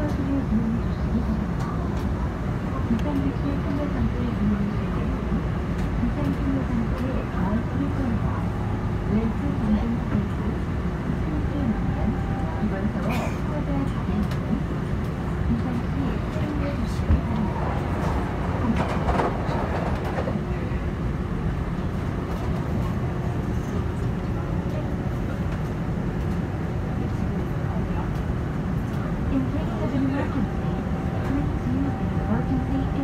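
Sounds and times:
subway wheels rumbling on track: 0:00.0 - 0:33.0.

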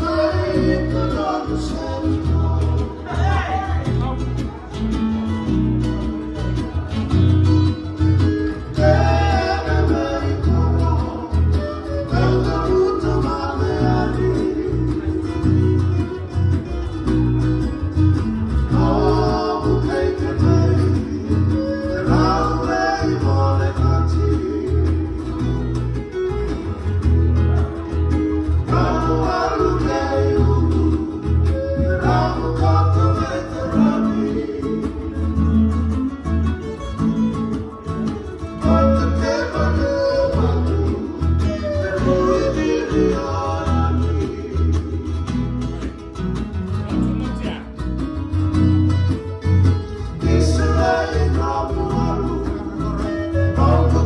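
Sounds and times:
men singing together: 0:00.0 - 0:03.8, 0:08.5 - 0:15.7, 0:18.5 - 0:25.5, 0:28.6 - 0:35.6, 0:38.6 - 0:45.4, 0:50.0 - 0:54.0
bass line: 0:00.0 - 0:54.0
strummed acoustic guitars and ukulele: 0:00.0 - 0:54.0.

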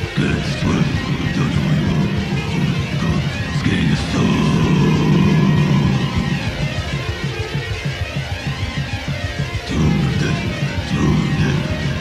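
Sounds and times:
steady low drone: 0:00.0 - 0:12.0
wall of distorted noise: 0:00.0 - 0:12.0.

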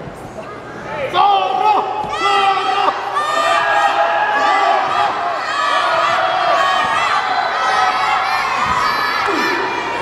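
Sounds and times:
wrestling crowd shouting and cheering: 0:00.9 - 0:10.0.

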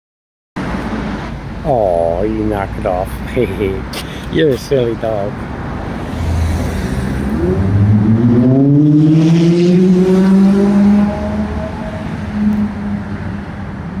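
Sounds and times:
low traffic rumble: 0:00.6 - 0:14.0
vehicle engine accelerating: 0:06.0 - 0:13.5.

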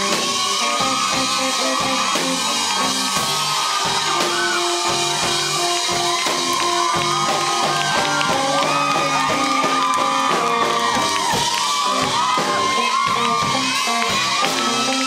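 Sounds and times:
electric guitar with bent notes: 0:00.0 - 0:15.0
people shouting and cheering: 0:00.0 - 0:15.0
steady drum beat: 0:00.0 - 0:15.0.

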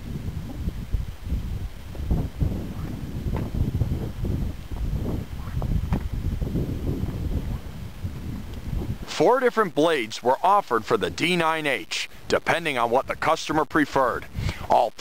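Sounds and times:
wind buffeting microphone: 0:00.0 - 0:09.4, 0:14.0 - 0:14.7.

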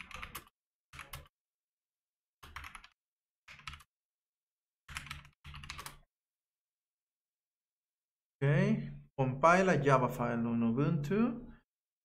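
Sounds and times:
computer keyboard typing: 0:00.0 - 0:01.4, 0:02.4 - 0:04.0, 0:04.8 - 0:06.1.

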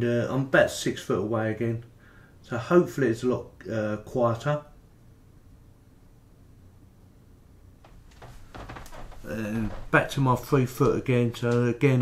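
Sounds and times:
faint steady hum: 0:00.0 - 0:12.0
footsteps on wooden floor: 0:07.8 - 0:11.1.

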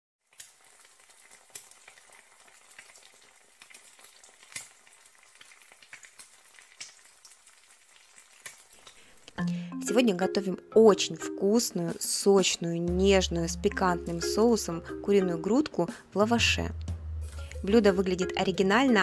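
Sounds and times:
crackles and pops: 0:00.2 - 0:09.4
food sizzling as it fries: 0:00.2 - 0:10.3, 0:11.4 - 0:19.0.

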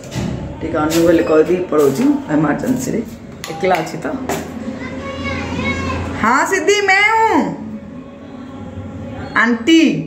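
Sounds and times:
child's voice: 0:04.7 - 0:06.2.

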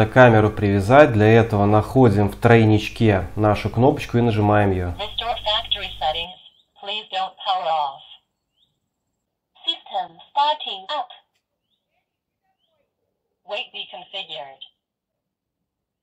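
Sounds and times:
recorded voice prompts from speaker: 0:00.0 - 0:08.2, 0:09.6 - 0:11.3, 0:12.6 - 0:14.7.

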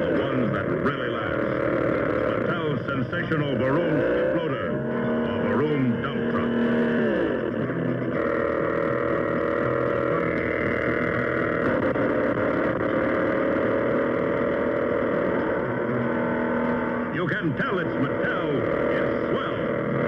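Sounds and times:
toy engine droning roar: 0:00.0 - 0:20.0.

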